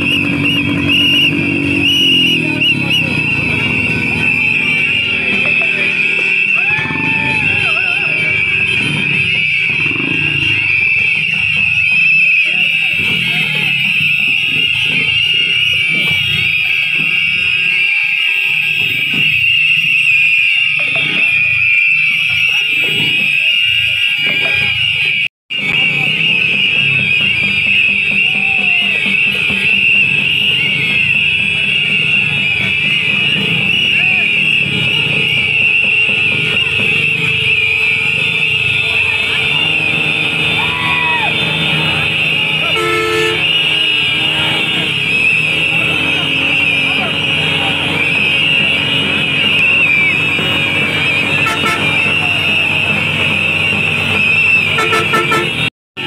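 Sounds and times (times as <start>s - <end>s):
shrill whistles blowing: 0.0s - 25.0s, 25.6s - 55.7s
crowd murmur: 0.0s - 55.7s.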